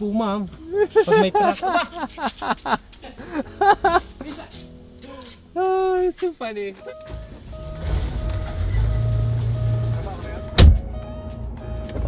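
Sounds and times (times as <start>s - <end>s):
car engine idling: 6.9s - 12.0s
sharp thump: 10.6s - 10.9s.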